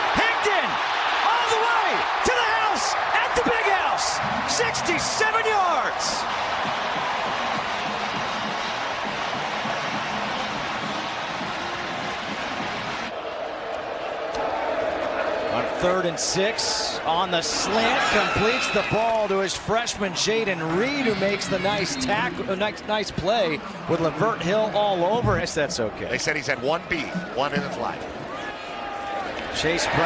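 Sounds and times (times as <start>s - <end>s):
stadium crowd roaring: 0.0s - 30.0s.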